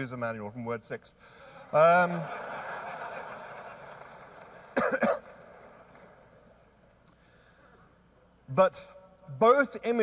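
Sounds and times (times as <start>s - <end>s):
large audience laughing: 1.9s - 4.8s
short cough: 4.8s - 5.3s.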